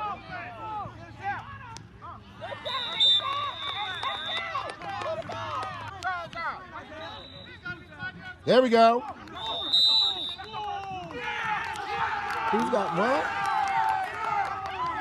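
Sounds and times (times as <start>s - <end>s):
crowd shouting: 9.4s - 15.0s.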